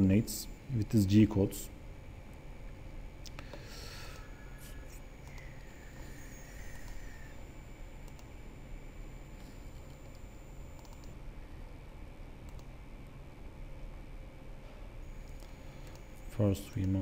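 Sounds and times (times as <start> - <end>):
low steady background hum: 0.0 - 17.0
computer mouse clicks: 5.2 - 5.8, 6.7 - 7.2, 8.0 - 8.3, 9.8 - 11.2, 12.4 - 12.7, 16.8 - 17.0.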